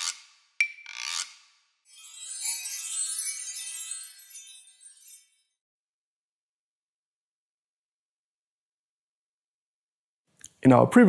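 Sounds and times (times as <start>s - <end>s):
shimmering chiming jingle: 1.9s - 5.6s.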